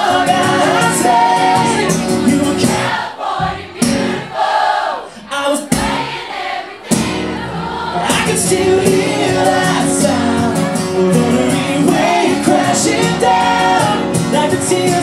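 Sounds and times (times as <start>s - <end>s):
audience singing along: 0.0s - 15.0s
live pop-country band with singing: 0.0s - 15.0s.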